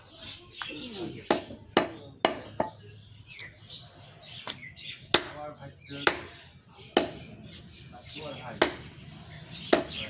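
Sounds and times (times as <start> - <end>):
knife chopping meat on wood block: 6.0 - 7.2, 8.5 - 8.9, 9.7 - 10.0.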